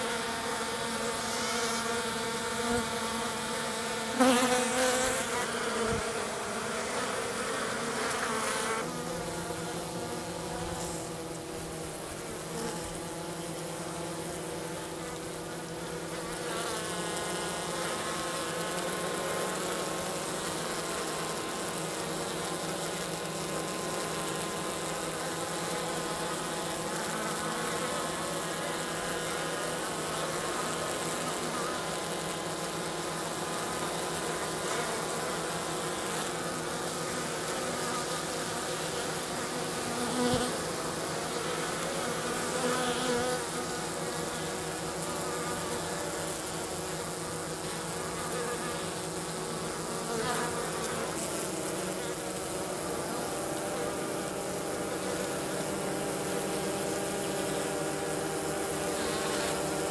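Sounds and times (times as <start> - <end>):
honey bees buzzing: 0.0 - 59.9.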